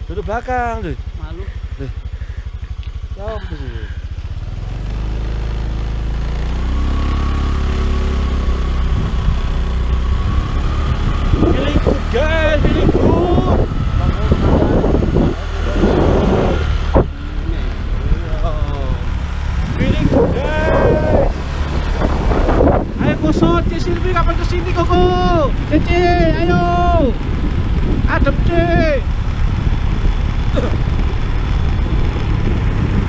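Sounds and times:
voices: 0:00.0 - 0:04.1, 0:11.1 - 0:27.3, 0:28.0 - 0:29.2
motor scooter engine speeding up: 0:00.0 - 0:33.0
wind rumble on microphone: 0:07.6 - 0:33.0.

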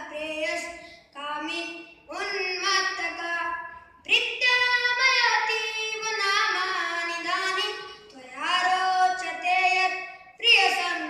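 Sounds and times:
boy singing unaccompanied: 0:00.0 - 0:11.0.

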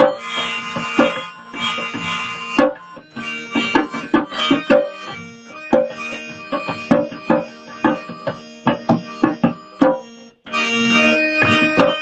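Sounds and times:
dholak drum beating: 0:00.0 - 0:12.0
harmonium chords: 0:00.0 - 0:12.0.

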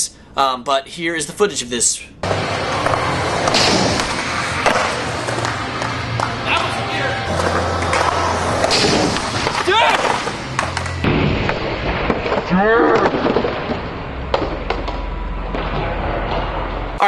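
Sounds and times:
skateboard rolling on concrete: 0:02.2 - 0:11.0
music: 0:02.2 - 0:12.1.

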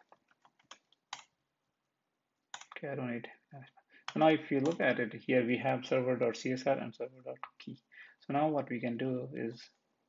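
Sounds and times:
faint typing on keyboard: 0:00.0 - 0:01.4, 0:02.5 - 0:02.9, 0:03.5 - 0:05.0.

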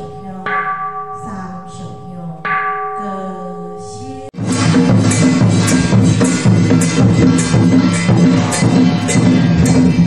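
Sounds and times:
bowl bell ringing: 0:00.0 - 0:10.0.

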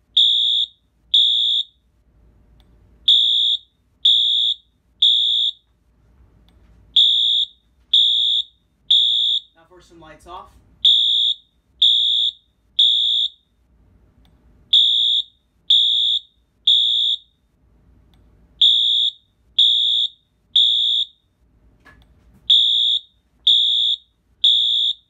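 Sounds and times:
fire alarm horn beeps: 0:00.1 - 0:01.9, 0:03.1 - 0:05.7, 0:07.0 - 0:09.7, 0:10.8 - 0:13.6, 0:14.7 - 0:17.5, 0:18.6 - 0:21.4, 0:22.5 - 0:25.0.

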